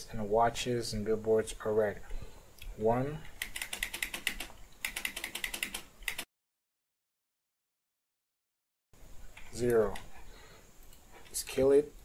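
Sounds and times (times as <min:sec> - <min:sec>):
computer keyboard typing: 0:03.4 - 0:06.3.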